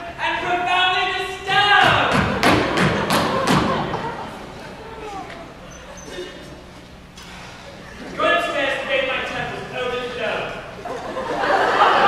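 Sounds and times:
feet stamping on stage floor: 1.8 - 4.2.

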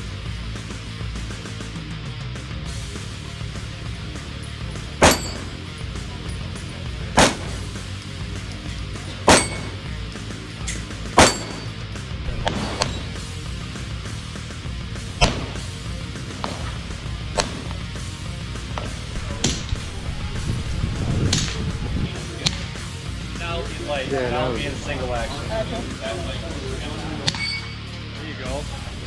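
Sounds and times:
background music with bass: 0.0 - 29.0
pistol shots: 4.9 - 5.6, 7.0 - 7.9, 9.1 - 9.9, 11.1 - 13.2, 15.1 - 17.9.

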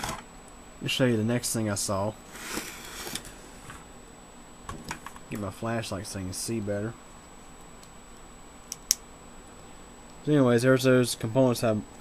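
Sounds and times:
faint steady hiss: 0.0 - 12.0
sharp clicks: 8.7 - 9.0.

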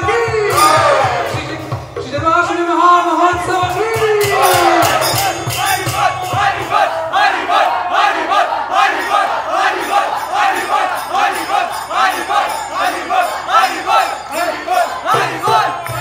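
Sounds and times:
men chanting in unison: 0.0 - 16.0
steady percussion beat: 0.0 - 16.0.

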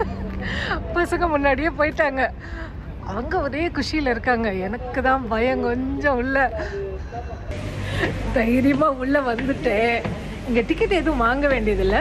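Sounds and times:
woman speaking: 8.0 - 12.0.

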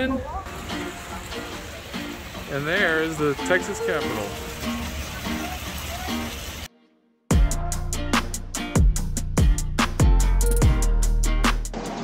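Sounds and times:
people talking: 0.0 - 1.8, 2.4 - 6.5
fountain water splashing: 0.0 - 6.7.

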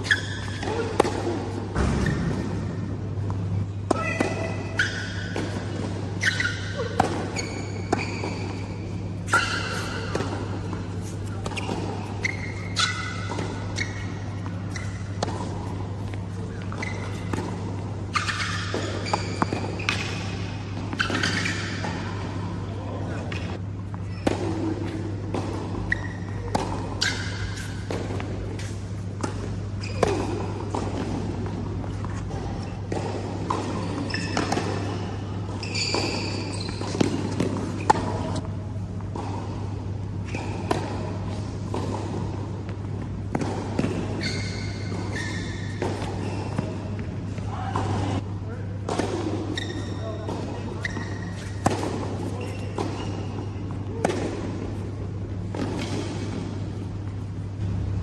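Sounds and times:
tennis ball striking rackets: 0.0 - 22.4, 23.2 - 48.2, 48.8 - 57.8
tennis ball bouncing: 0.0 - 48.2, 48.8 - 58.0
steady low hum: 0.0 - 58.0.

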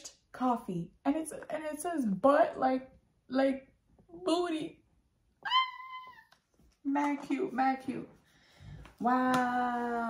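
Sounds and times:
woman squealing: 5.4 - 6.3.

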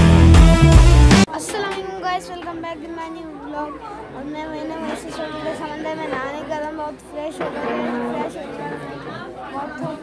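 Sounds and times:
indistinct chatter: 1.3 - 10.0.

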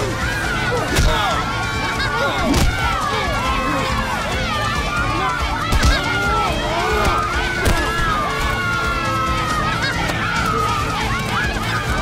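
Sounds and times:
boys shouting and yelling: 0.0 - 12.0.

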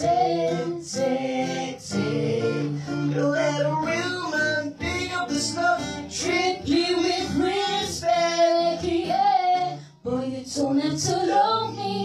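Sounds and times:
strummed acoustic guitar: 0.0 - 12.0
woman singing: 6.2 - 12.0.

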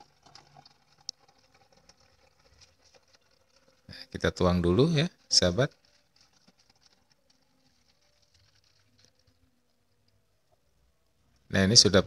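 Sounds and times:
liquid trickling into plastic bottle: 0.0 - 10.2.

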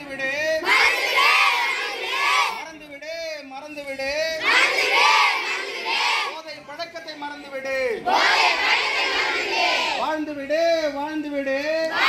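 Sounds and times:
children shouting together: 0.7 - 2.6, 4.4 - 6.3, 8.1 - 10.0.

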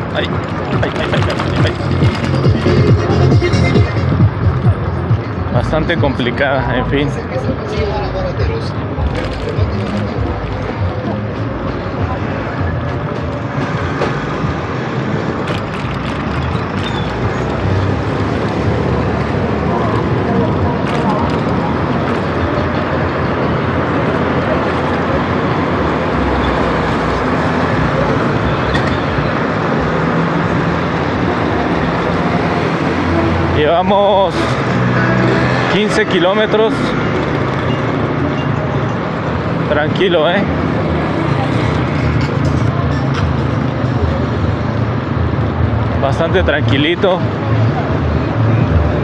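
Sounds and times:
traffic noise: 0.0 - 49.0
voices of people: 0.0 - 49.0.

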